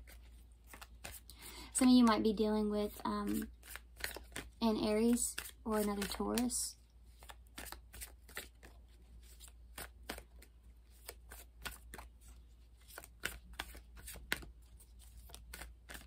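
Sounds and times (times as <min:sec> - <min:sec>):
cards being shuffled: 0:00.0 - 0:01.5, 0:02.9 - 0:16.0.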